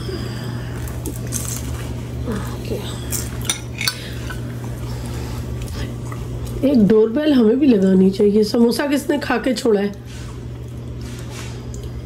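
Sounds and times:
metal utensils clinking on dishes: 3.4s - 4.4s.

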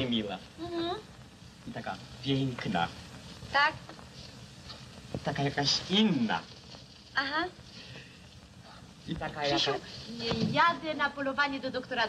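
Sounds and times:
film soundtrack hiss: 0.0s - 12.0s.

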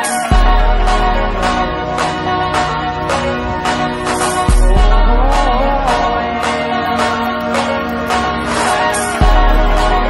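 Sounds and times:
music with sustained tones: 0.0s - 10.0s
steady beat: 0.0s - 10.0s.

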